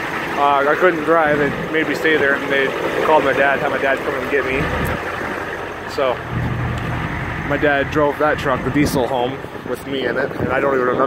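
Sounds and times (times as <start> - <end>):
truck engine idling: 0.0 - 11.0.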